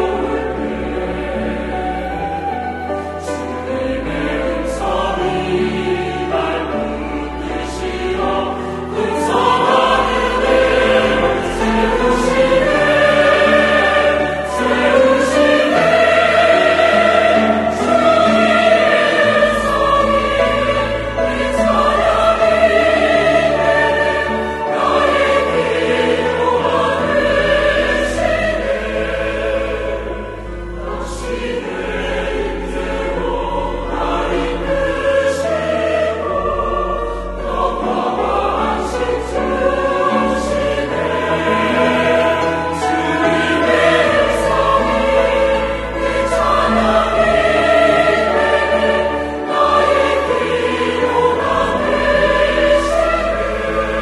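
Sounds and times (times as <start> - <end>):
flute: 0.0 - 27.0
cello: 0.0 - 54.0
church choir singing: 0.0 - 54.0
piano: 0.0 - 54.0
violins: 0.0 - 54.0.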